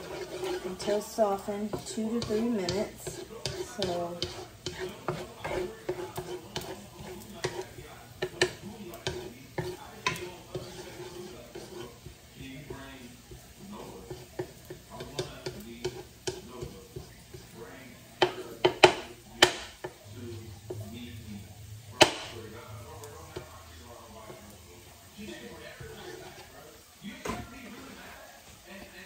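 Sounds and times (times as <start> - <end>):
wooden spatula scraping pan: 0.0 - 28.1
garlic sizzling: 0.0 - 29.0
spatula knocking on counter: 18.2 - 20.0.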